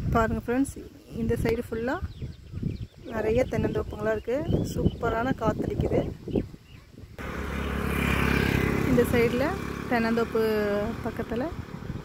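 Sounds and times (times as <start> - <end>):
vehicle engine and tyre noise: 7.2 - 12.0.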